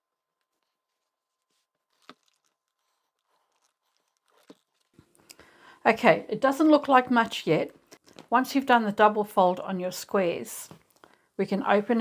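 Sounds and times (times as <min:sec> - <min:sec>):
fabric rustling: 0:00.3 - 0:05.1.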